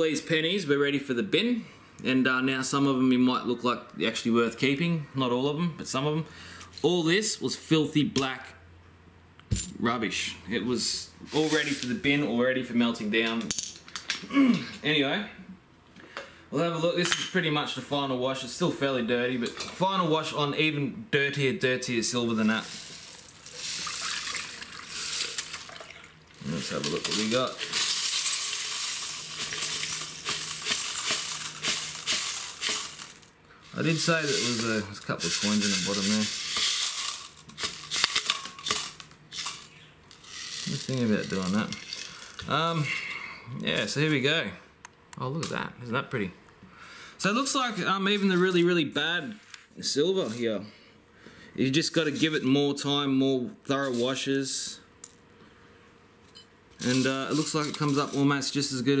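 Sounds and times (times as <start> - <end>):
small metal pieces jingling: 26.4 - 42.4.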